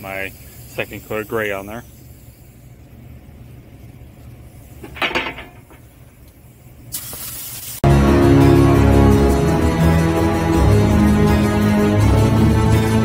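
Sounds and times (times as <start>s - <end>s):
paint spray gun hissing: 0.0s - 2.9s, 6.9s - 7.8s
music: 7.8s - 13.0s.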